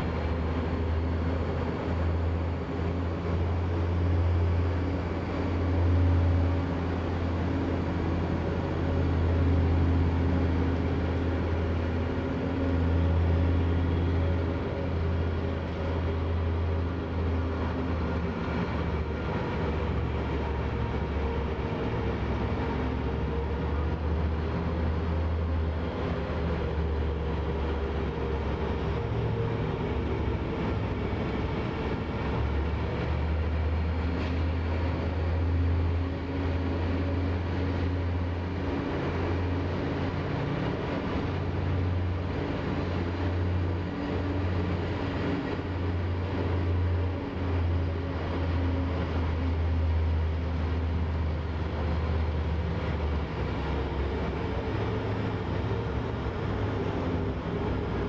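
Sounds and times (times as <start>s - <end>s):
low machinery hum: 0.0s - 58.0s.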